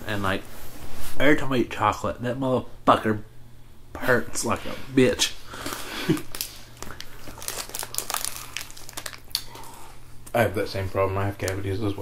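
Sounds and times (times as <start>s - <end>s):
plastic wrapper crinkling: 5.6s - 9.8s.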